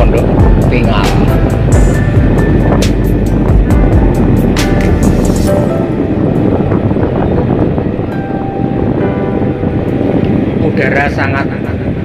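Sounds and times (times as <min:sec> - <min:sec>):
road noise: 0:00.0 - 0:12.0
wind buffeting microphone: 0:00.0 - 0:12.0.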